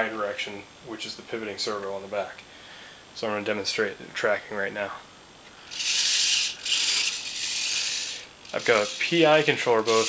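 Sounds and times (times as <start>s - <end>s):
robot motors buzzing: 5.7s - 10.0s.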